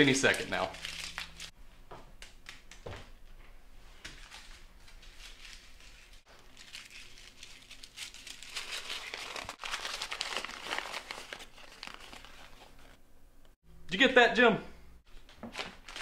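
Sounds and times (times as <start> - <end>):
paper crinkling: 0.0 - 1.5, 4.0 - 13.0, 15.4 - 16.0.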